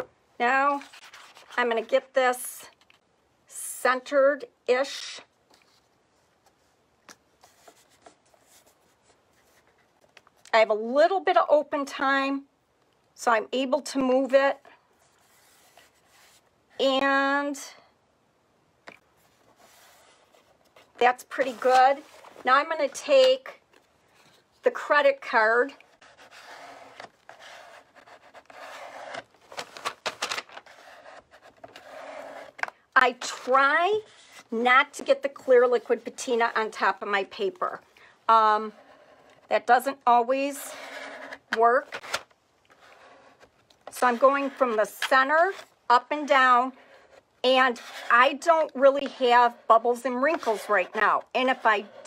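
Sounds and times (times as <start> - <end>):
plastic card rubbing over paper: 0.7 - 1.6, 25.9 - 32.7.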